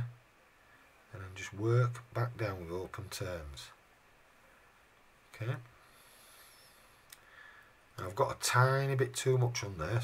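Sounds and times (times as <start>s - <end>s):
faint click: 7.0s - 7.3s.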